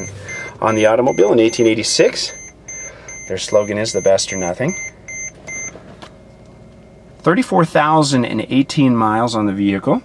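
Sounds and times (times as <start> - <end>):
seatbelt reminder beeps: 0.0 - 6.4
idling engine hum: 0.0 - 10.0.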